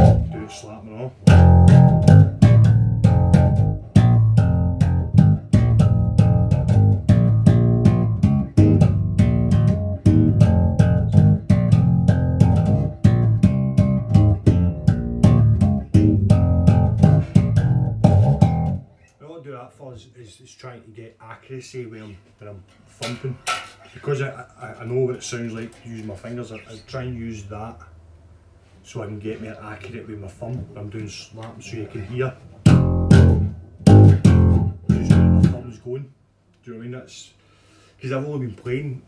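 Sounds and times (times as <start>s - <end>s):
slap bass playing: 0.0s - 18.9s, 32.6s - 35.7s.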